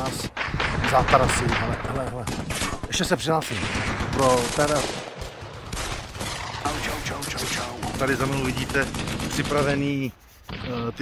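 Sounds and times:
rapid gunfire: 0.0 - 10.8.

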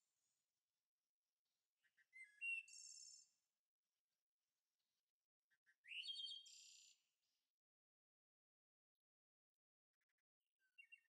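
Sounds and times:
songbird singing with trill: 1.8 - 3.3, 5.5 - 7.0, 10.6 - 11.0.

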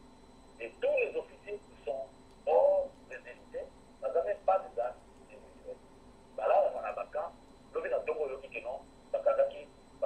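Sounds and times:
person talking over telephone: 0.6 - 5.8, 6.4 - 9.7.

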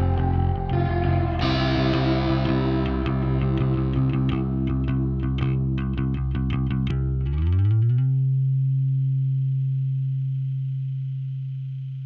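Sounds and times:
deep bass note: 0.0 - 8.4.

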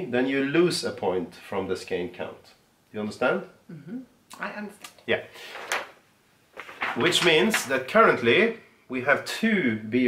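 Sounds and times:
paper sliding and rustling: 5.4 - 7.7.

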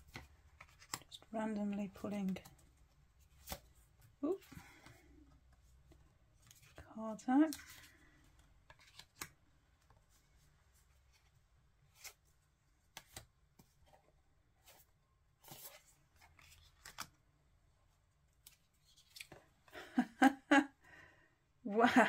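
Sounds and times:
cards clicking and tapping: 0.0 - 1.3, 7.5 - 10.0, 12.9 - 13.9, 16.3 - 17.2.

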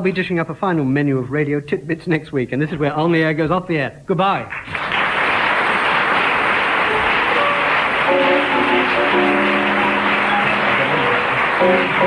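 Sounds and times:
audience applauding: 4.5 - 12.0
theme music with held notes: 6.9 - 12.0.

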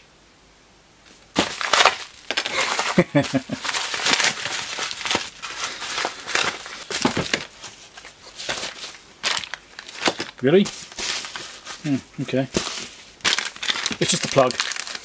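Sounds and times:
mailing bag crumpled by hand: 1.4 - 12.0, 12.6 - 15.0.

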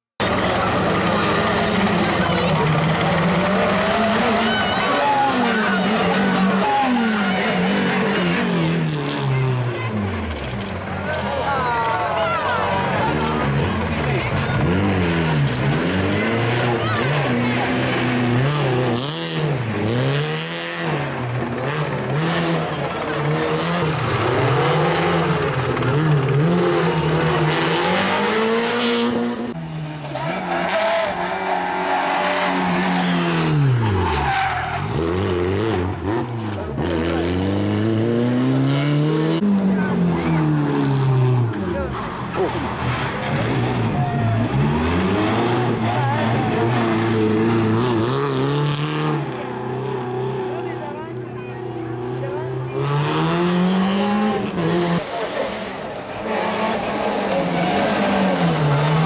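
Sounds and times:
rally car engine revving: 0.2 - 59.0
tyres skidding: 0.2 - 59.0.

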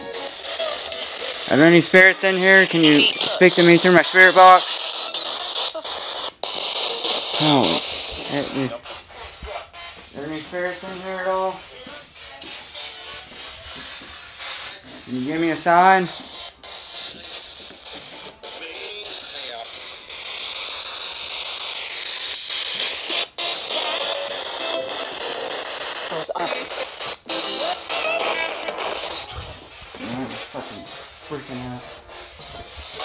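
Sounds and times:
broken radio voices and music: 0.0 - 33.0
radio static hiss: 0.0 - 33.0.

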